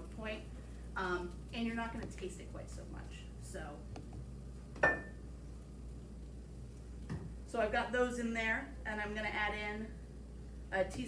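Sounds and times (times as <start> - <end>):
kitchenware clink with ring: 4.8 - 5.2.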